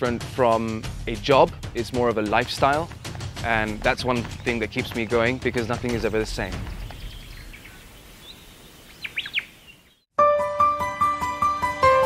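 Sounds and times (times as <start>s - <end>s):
quiet outdoor ambience: 1.8s - 10.0s
bird whistling and chirping: 6.7s - 10.1s.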